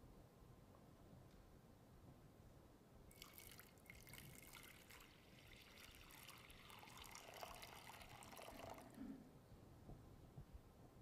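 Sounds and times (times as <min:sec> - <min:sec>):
water pouring into a bowl: 0:03.1 - 0:09.0.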